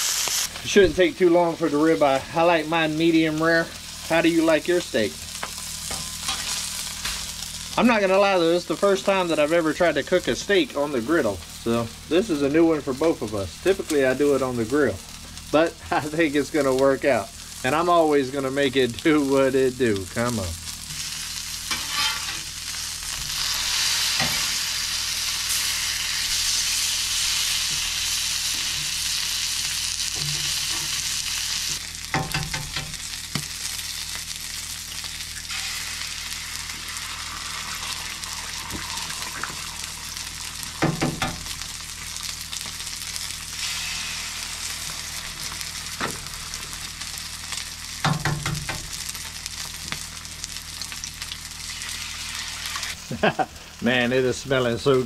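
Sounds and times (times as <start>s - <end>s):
steaks sizzling on a griddle: 0.0s - 53.5s.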